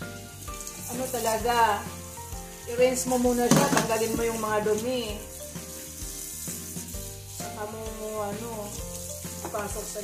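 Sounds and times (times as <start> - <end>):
dishes rinsed by hand: 3.1 - 5.1.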